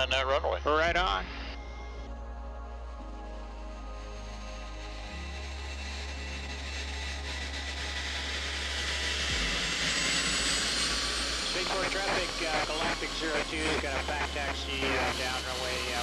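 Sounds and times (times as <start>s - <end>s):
background music low held notes: 0.0s - 16.0s
jet engines rushing: 4.5s - 16.0s.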